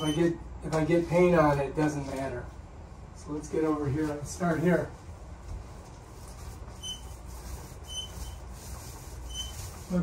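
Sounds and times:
short high squeaks: 0.0s - 0.4s, 6.7s - 9.8s
paint roller rubbing on wall: 3.8s - 10.0s.

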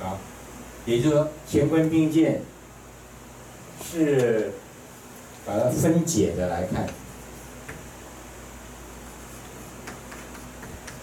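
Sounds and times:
low room hum: 0.0s - 11.0s
chalk tapping on blackboard: 9.3s - 11.0s.

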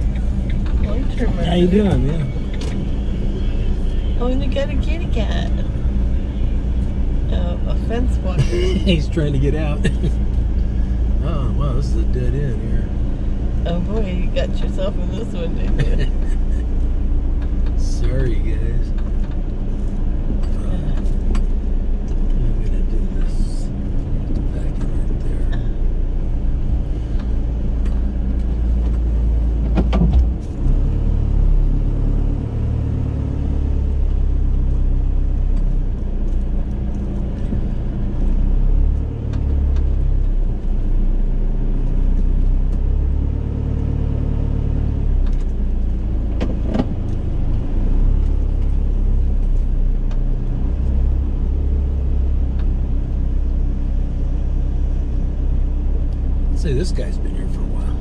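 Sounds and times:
van engine low rumble: 0.0s - 58.0s.

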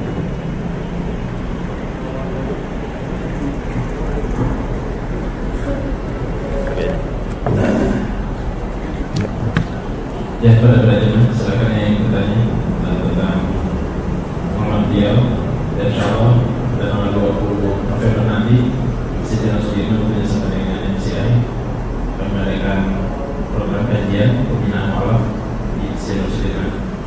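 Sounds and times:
low rumbling background noise: 0.0s - 27.0s
man speaking into a microphone: 10.4s - 13.6s, 14.5s - 21.6s, 22.2s - 26.9s.

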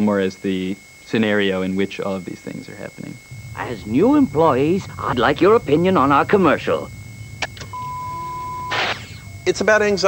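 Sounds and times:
single-pitch test tone beep: 3.1s - 10.0s
burst of hiss: 8.6s - 9.3s.

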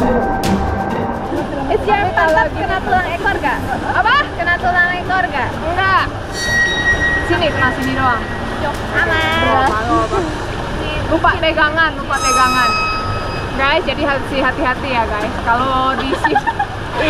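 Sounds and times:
voices talking and exclaiming: 0.0s - 17.0s.

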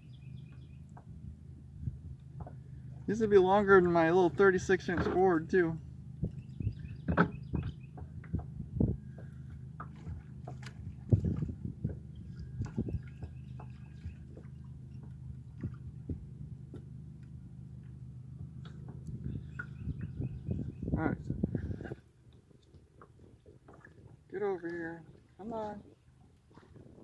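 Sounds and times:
steady low hum: 0.0s - 27.0s
knocks and bumps in a kayak: 0.3s - 4.0s, 4.6s - 18.0s, 18.6s - 22.0s.

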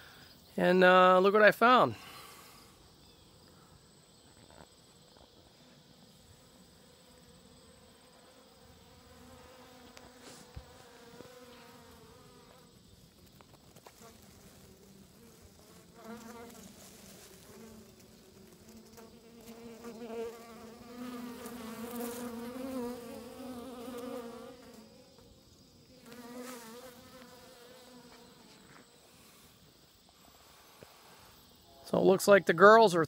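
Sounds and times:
honeybees buzzing: 4.1s - 31.7s.

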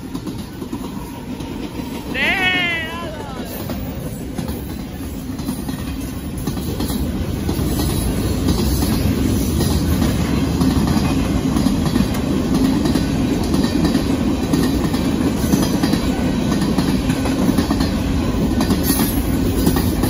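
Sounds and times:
train wheels rumbling on rail: 0.0s - 20.0s
wheels clacking over rail joints: 3.4s - 20.0s.

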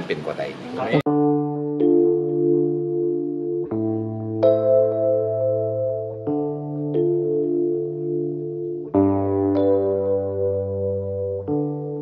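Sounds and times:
sustained music chords: 1.0s - 12.0s.

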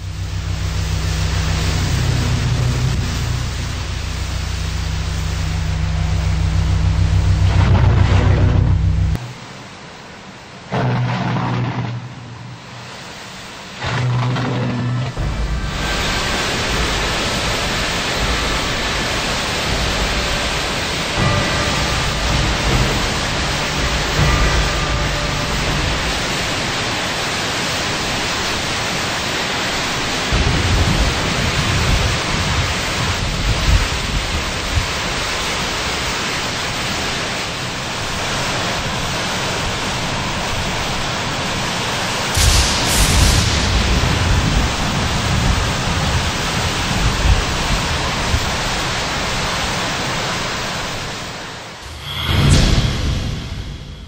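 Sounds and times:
strong wind and driving rain: 0.0s - 54.0s
wind gusts buffeting microphone: 30.3s - 36.0s.

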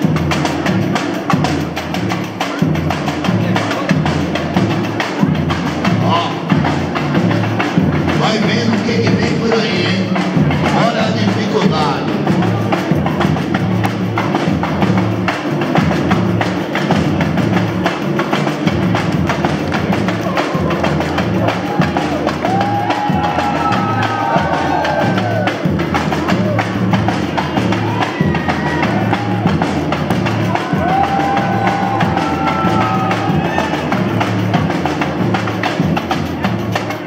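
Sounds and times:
samba percussion music: 0.0s - 37.0s
voices singing or calling: 19.9s - 34.5s.

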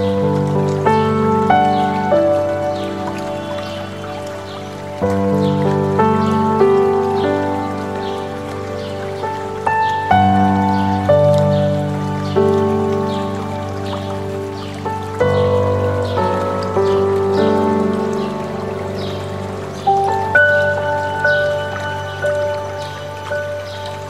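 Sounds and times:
flowing stream water: 0.0s - 24.0s
soft piano music: 0.0s - 24.0s.

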